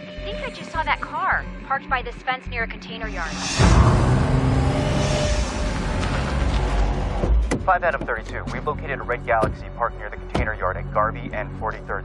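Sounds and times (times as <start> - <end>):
tyres on wet pavement: 5.5 - 7.4.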